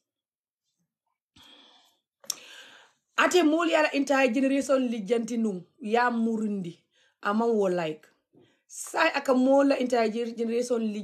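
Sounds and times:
woman breathing: 1.4 - 3.1
mouth click: 2.2 - 2.5
woman speaking: 3.2 - 8.1, 8.7 - 11.0.

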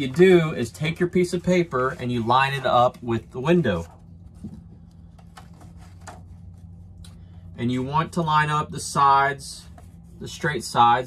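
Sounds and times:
paper rustling: 0.0 - 6.9
steady low hum: 0.0 - 11.0.

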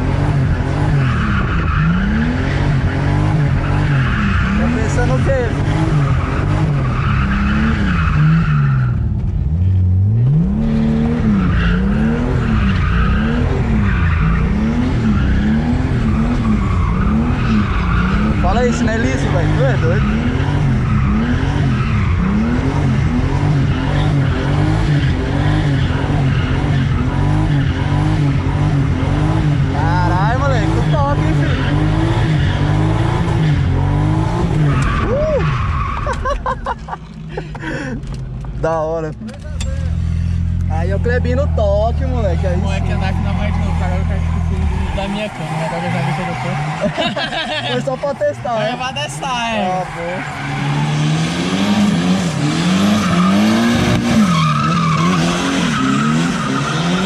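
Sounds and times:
car engine revving: 0.0 - 57.0
tyres squealing: 52.8 - 57.0.

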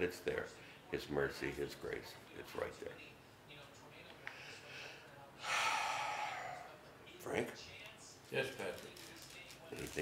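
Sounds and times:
man breathing out: 5.4 - 6.7.

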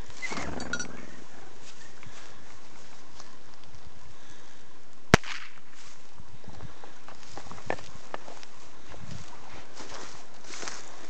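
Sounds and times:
sharp crack: 5.1 - 5.8.

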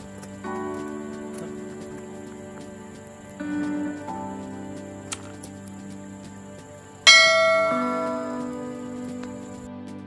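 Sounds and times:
bell chime ringing: 7.1 - 8.9.

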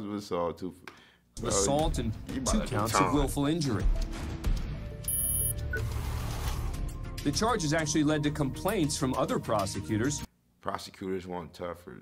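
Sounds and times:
background music: 1.4 - 10.3.

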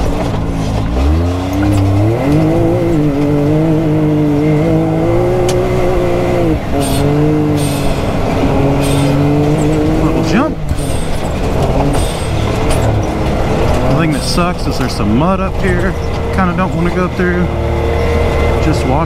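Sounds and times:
engine revving under hard throttle: 0.0 - 19.0.

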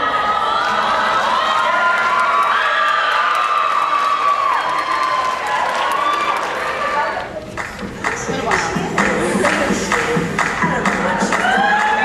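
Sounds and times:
audience cheering and screaming: 0.0 - 7.4, 11.0 - 12.0.

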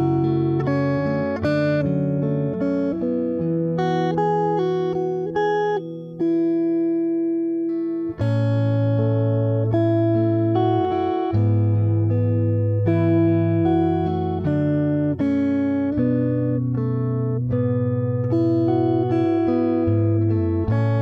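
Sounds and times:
fingerstyle acoustic guitar: 0.0 - 21.0.

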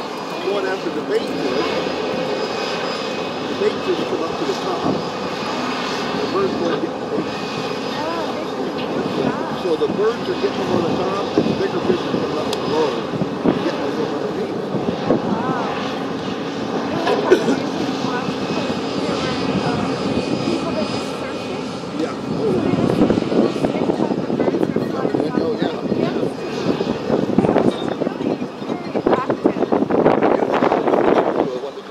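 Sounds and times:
engine drone: 0.0 - 31.9
indistinct voices: 0.0 - 31.9.

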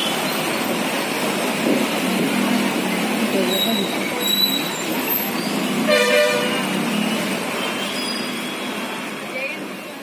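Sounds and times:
bus driving through water: 0.0 - 10.0
traffic noise: 0.0 - 10.0
vehicle horn honk: 5.9 - 6.7.

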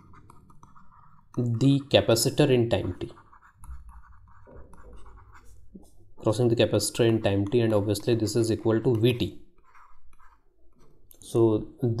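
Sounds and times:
stylus scratching on tablet: 0.0 - 11.3.

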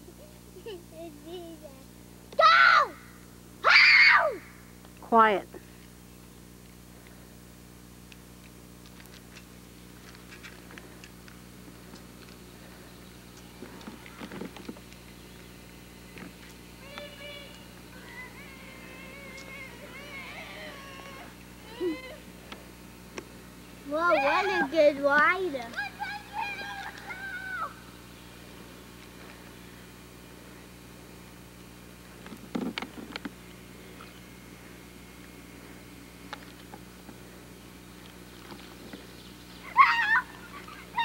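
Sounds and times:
steady low hum: 0.0 - 41.0
camcorder hiss: 5.8 - 41.0.

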